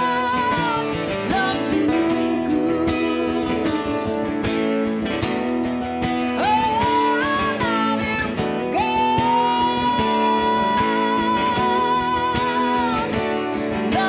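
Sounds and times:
acoustic guitars: 0:00.0 - 0:14.0
woman singing country ballad: 0:00.0 - 0:14.0.

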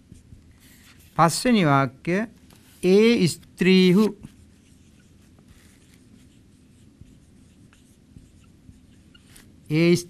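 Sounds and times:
marker scratching on whiteboard: 0:00.0 - 0:01.5, 0:02.5 - 0:10.0
marker tapping on whiteboard: 0:07.0 - 0:09.3.

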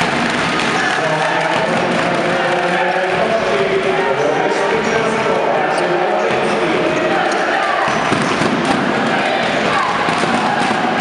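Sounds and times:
basketball bouncing on wooden court: 0:00.0 - 0:03.9, 0:06.2 - 0:11.0
din of voices in a hall: 0:00.0 - 0:11.0.

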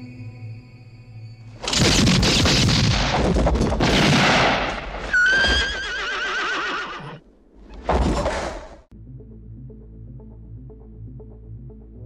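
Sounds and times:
horse whinnying: 0:05.0 - 0:07.2.

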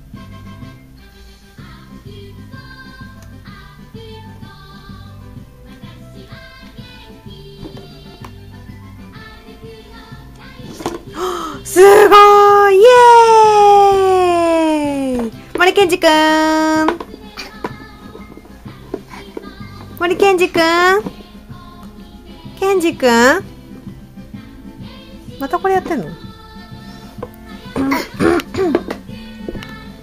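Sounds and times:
background music: 0:00.0 - 0:30.0
high voice holding a vowel: 0:11.2 - 0:17.0.

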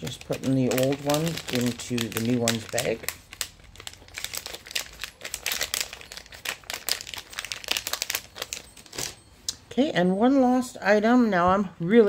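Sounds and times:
plastic bag crinkling: 0:00.0 - 0:09.2.

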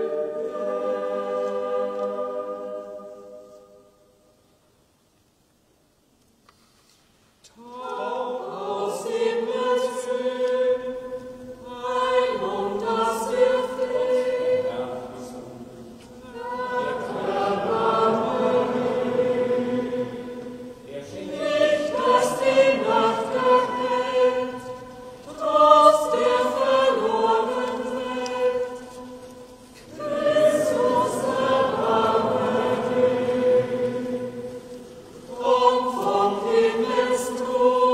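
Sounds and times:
choir singing in a church: 0:00.0 - 0:37.9.

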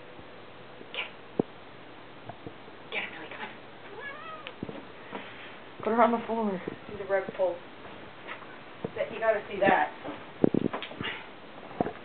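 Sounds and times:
cat meowing: 0:03.9 - 0:04.6.

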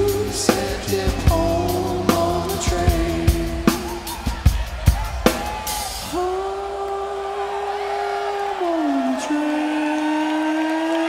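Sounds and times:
rock band playing live: 0:00.0 - 0:06.3.

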